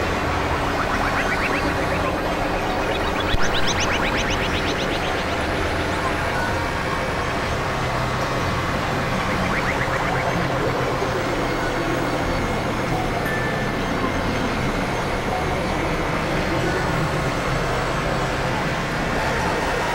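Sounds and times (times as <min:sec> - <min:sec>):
low hum: 0:00.0 - 0:13.2
experimental electronic noise drones: 0:00.0 - 0:19.9
rapidly repeated chirps: 0:00.1 - 0:06.7, 0:08.9 - 0:11.0.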